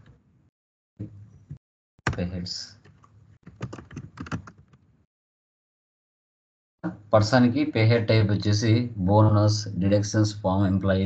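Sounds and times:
computer keyboard typing: 3.4s - 4.7s.

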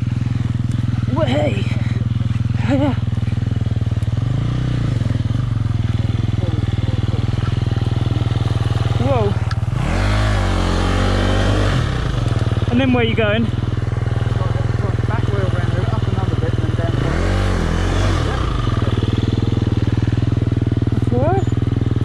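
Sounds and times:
motorbike engine idling and revving: 0.0s - 22.0s.

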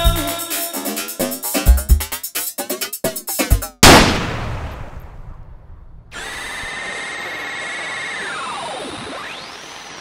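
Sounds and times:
loud gunshot: 3.8s - 5.6s.

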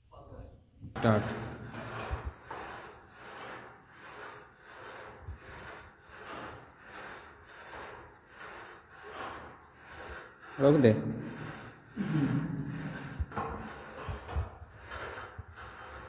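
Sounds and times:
cable machine rasping swishes: 1.0s - 16.0s
person speaking: 10.6s - 11.4s, 12.0s - 13.4s.

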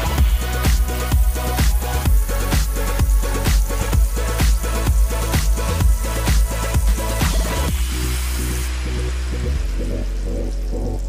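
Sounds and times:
background music with bass: 0.0s - 11.0s.

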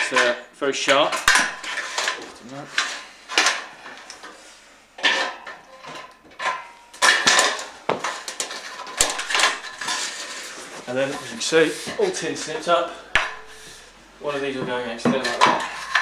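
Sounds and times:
sheet metal ringing: 13.1s - 13.9s.

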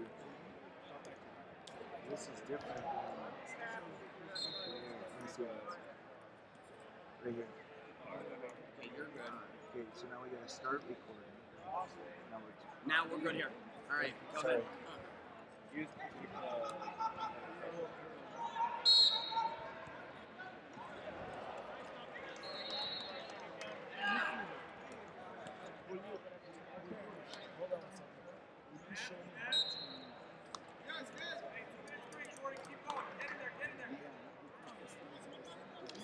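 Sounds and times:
voices echoing in a hall: 0.0s - 36.0s
short high whistle blasts: 18.9s - 19.4s.

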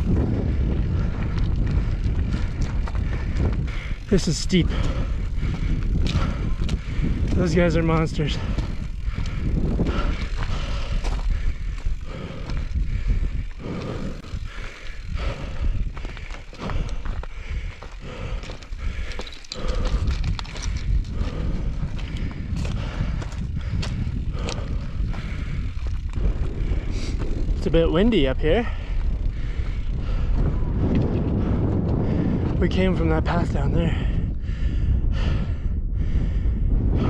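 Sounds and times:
bike tyres crunching on gravel: 0.0s - 34.2s
wind rumbling on microphone: 0.0s - 37.0s
stones clicking: 18.5s - 21.1s.

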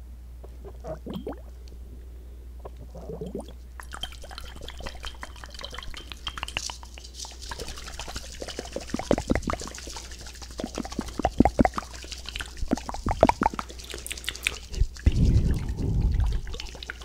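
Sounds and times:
wet mouth clicks and smacks: 3.8s - 17.0s.

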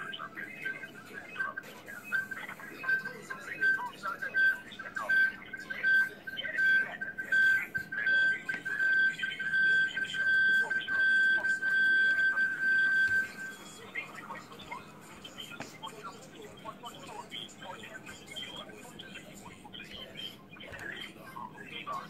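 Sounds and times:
high-pitched electronic beeps: 0.0s - 14.3s
faint voice: 0.0s - 22.0s.

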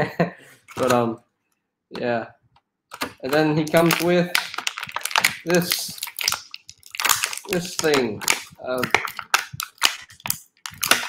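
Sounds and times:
plastic packaging crackling: 2.9s - 11.0s.

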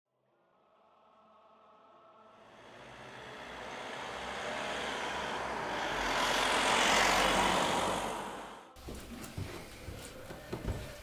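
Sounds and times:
vehicle passing by: 1.3s - 8.8s.

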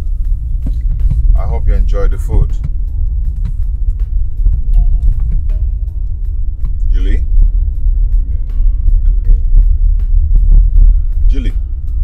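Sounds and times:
car cabin rumble: 0.0s - 12.0s
faint background music: 0.0s - 12.0s.

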